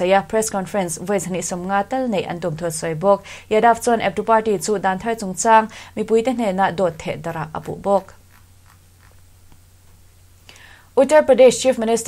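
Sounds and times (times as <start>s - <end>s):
woman speaking: 0.0s - 8.2s, 11.0s - 12.0s
faint low hum: 0.0s - 12.0s
soft intake of breath: 3.2s - 3.5s, 5.7s - 6.0s, 10.4s - 11.0s.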